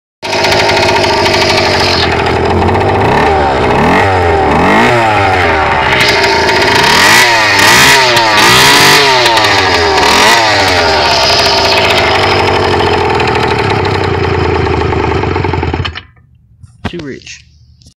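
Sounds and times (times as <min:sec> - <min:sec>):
two-stroke engine idling and revving: 0:00.2 - 0:16.2.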